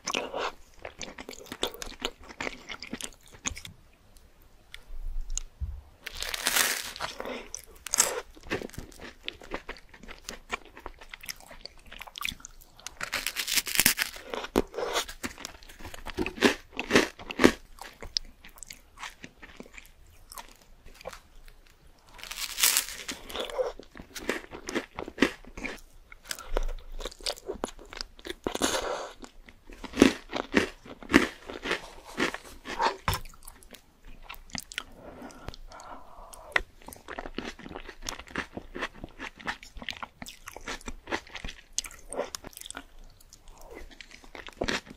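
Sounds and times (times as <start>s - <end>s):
close-miked chewing and biting: 0.0s - 3.7s, 6.1s - 44.9s.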